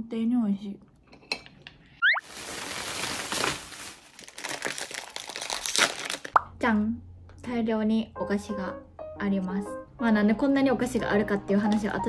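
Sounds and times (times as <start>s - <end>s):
plastic bag crinkling: 2.2s - 6.4s
snack packets crinkling: 2.2s - 6.4s.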